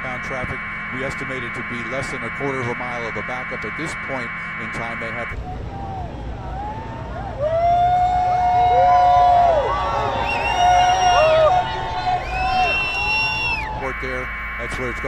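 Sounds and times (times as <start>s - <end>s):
crowd shouting and cheering: 5.3s - 13.9s
low rumble of passing vehicles: 5.3s - 15.0s.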